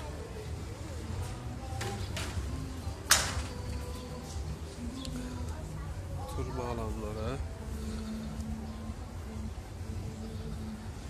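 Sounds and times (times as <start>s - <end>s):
background music: 0.0s - 11.0s
faint distant voices: 0.0s - 11.0s.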